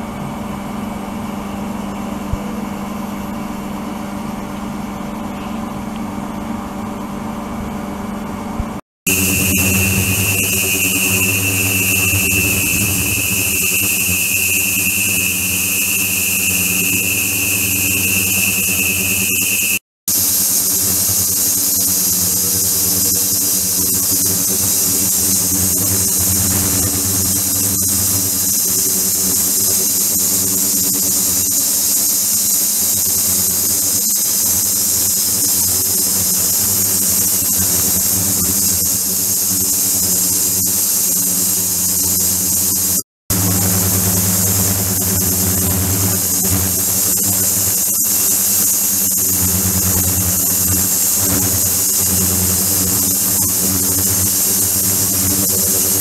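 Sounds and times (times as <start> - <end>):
high-pitched whine: 9.1 - 32.6, 34.7 - 56.0
cleaning tank hum and hiss: 9.1 - 56.0.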